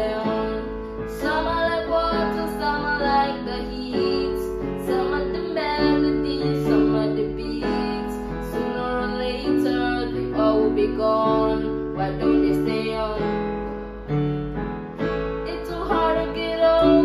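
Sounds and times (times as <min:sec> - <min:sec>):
boy singing: 0:00.0 - 0:13.3, 0:15.5 - 0:17.0
keyboard piano chords: 0:00.0 - 0:17.0.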